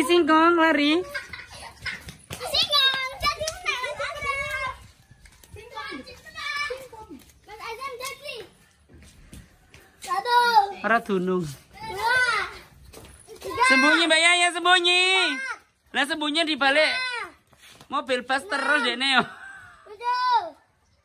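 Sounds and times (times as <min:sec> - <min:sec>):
children calling out at play: 0:01.0 - 0:10.8, 0:11.6 - 0:15.8, 0:16.8 - 0:17.6, 0:18.3 - 0:20.9.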